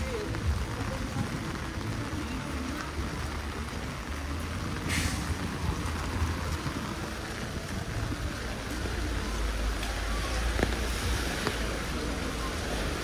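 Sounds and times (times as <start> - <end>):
heavy rain on umbrella: 0.0 - 13.0.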